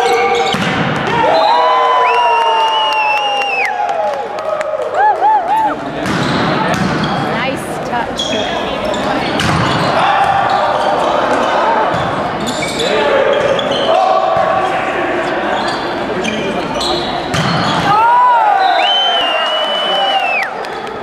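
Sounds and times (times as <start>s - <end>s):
volleyball being struck: 0.4s - 1.2s, 6.0s - 7.1s, 9.4s - 10.4s, 17.3s - 17.9s
spectators chatting: 4.8s - 21.0s.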